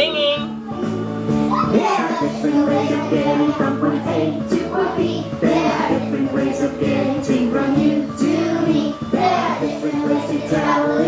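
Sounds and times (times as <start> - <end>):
children's song backing music: 0.0 - 11.0
children singing: 1.5 - 11.0.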